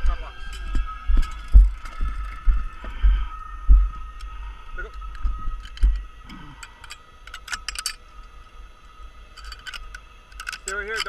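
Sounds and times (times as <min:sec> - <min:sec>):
wind buffeting microphone: 0:00.0 - 0:06.4
faint high-pitched hum: 0:00.0 - 0:11.0.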